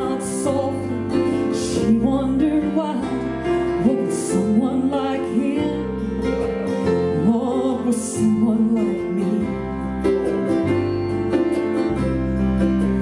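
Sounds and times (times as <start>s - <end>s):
acoustic guitar: 0.0s - 13.0s
woman singing gospel song: 1.6s - 5.9s, 7.2s - 9.7s.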